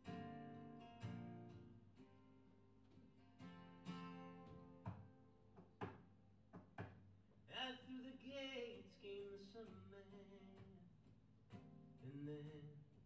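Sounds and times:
acoustic guitar picking: 0.0 - 6.8, 7.5 - 13.0.

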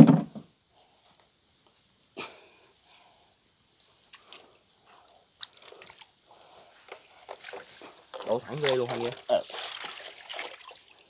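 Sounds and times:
wet fish net rustling in water: 5.1 - 11.0
light splashes: 6.9 - 11.0.

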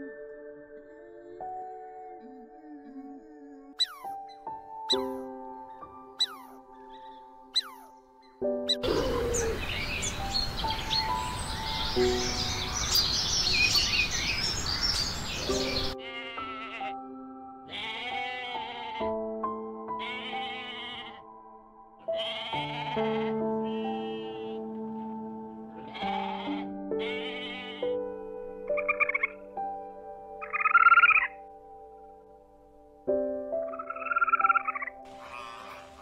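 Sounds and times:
soft piano music: 0.0 - 36.0
high chirps: 3.8 - 4.3, 6.2 - 6.5, 7.6 - 7.9
goat bleating: 16.0 - 17.0, 17.7 - 19.1, 20.0 - 21.2, 22.2 - 24.6, 25.8 - 27.8, 35.1 - 36.0.

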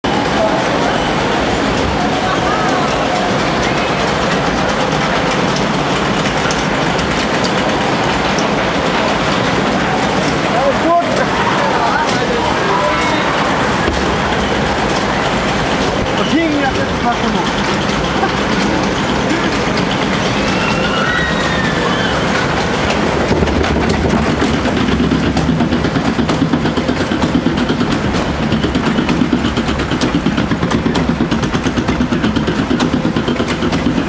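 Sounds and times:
water rushing and churning: 0.1 - 34.0.

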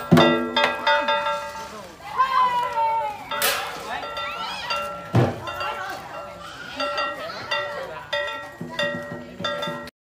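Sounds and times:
low drum beats: 0.0 - 1.5, 6.8 - 9.9.

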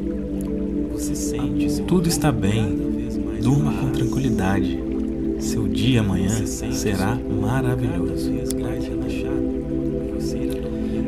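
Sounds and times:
ambient new-age music: 0.0 - 11.0.

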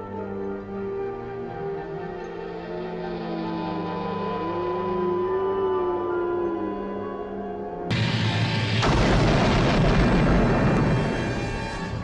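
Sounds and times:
deep explosion blast: 7.9 - 12.0.

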